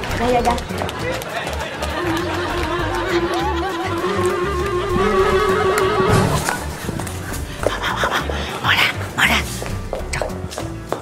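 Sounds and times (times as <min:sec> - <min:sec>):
low music beat: 0:01.8 - 0:11.0.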